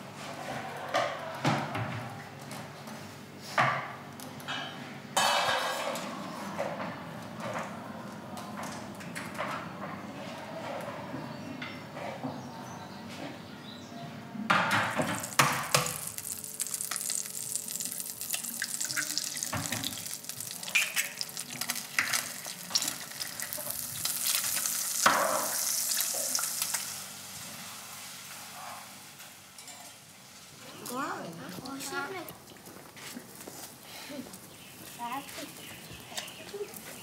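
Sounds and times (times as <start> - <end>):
pan and utensils knocking: 4.5 - 6.0, 14.5 - 17.2
egg sizzling in a pan: 15.0 - 30.6.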